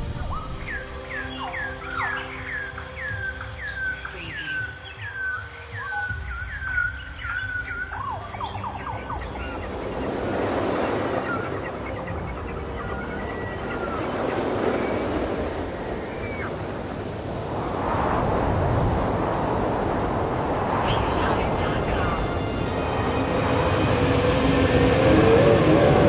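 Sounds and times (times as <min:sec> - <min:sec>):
bird calls: 0:00.0 - 0:17.6, 0:18.3 - 0:23.2
ocean waves: 0:00.0 - 0:26.0.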